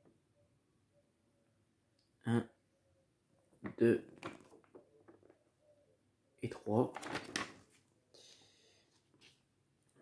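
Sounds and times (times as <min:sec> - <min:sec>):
paper pages turning: 0:06.9 - 0:07.8.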